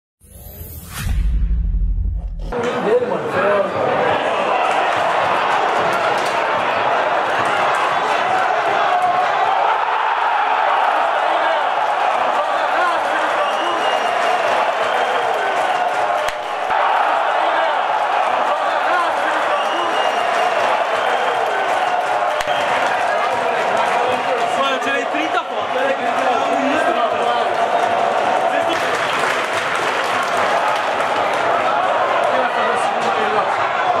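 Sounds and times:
whooshing intro with bass hit: 0:00.2 - 0:02.5
stadium crowd chanting: 0:03.7 - 0:28.4.

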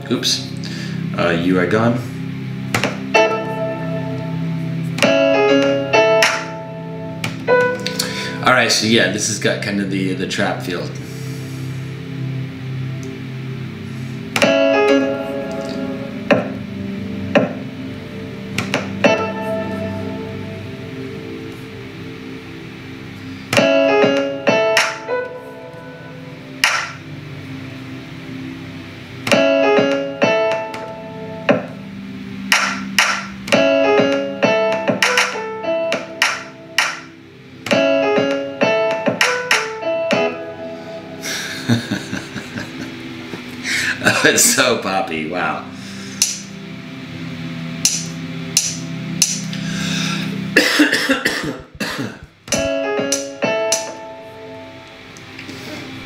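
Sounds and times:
piano chords: 0:00.0 - 0:56.0
programmed drum hits: 0:16.2 - 0:16.6, 0:17.3 - 0:17.7, 0:32.5 - 0:37.1, 0:37.7 - 0:40.4, 0:47.8 - 0:49.5.

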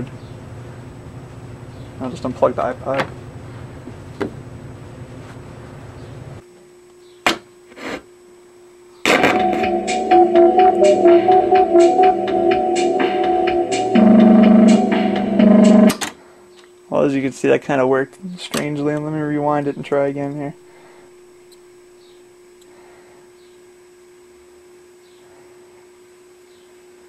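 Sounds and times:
low hum: 0:09.1 - 0:15.9
synthesizer music from tape: 0:09.1 - 0:16.0.

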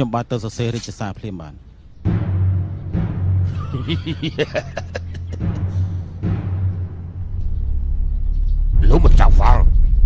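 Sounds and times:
man's voice: 0:03.6 - 0:05.4, 0:08.8 - 0:09.8.

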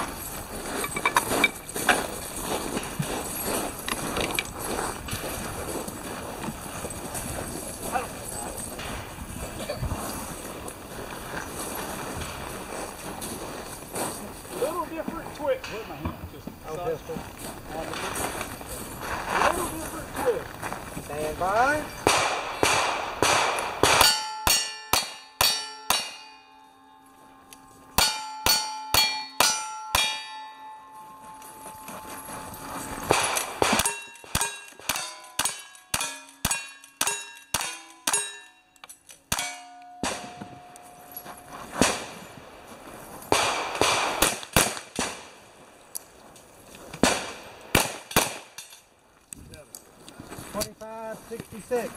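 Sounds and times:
steel plates clanging: 0:00.8 - 0:01.8, 0:23.9 - 0:41.8
gunshots: 0:22.0 - 0:26.3, 0:33.0 - 0:38.3, 0:39.3 - 0:40.8, 0:41.7 - 0:42.2, 0:43.3 - 0:45.4, 0:47.0 - 0:48.6.

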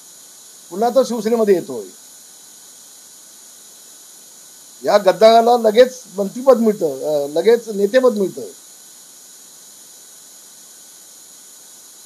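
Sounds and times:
faint recording hiss: 0:00.0 - 0:12.0.

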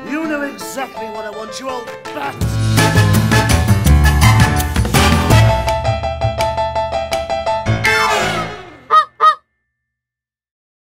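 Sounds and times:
goose honking: 0:08.0 - 0:09.4.

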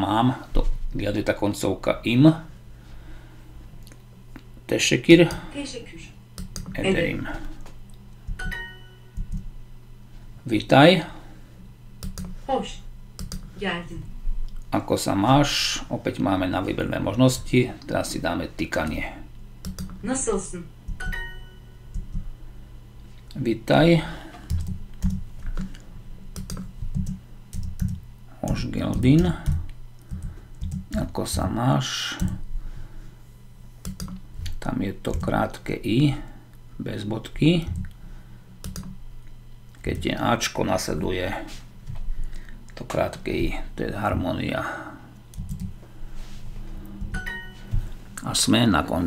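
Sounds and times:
low steady hum: 0:00.0 - 0:49.0
keyboard typing: 0:06.4 - 0:06.8, 0:08.3 - 0:09.5, 0:12.0 - 0:12.4, 0:13.2 - 0:13.5, 0:19.6 - 0:20.0, 0:24.4 - 0:31.1, 0:32.2 - 0:32.4, 0:33.8 - 0:34.2, 0:38.6 - 0:39.0, 0:45.3 - 0:45.7
bright ding chime: 0:08.4 - 0:09.1, 0:21.0 - 0:21.7, 0:47.2 - 0:47.7.

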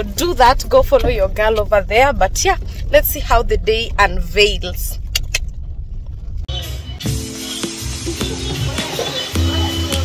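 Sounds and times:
car cabin rumble: 0:00.0 - 0:07.0.

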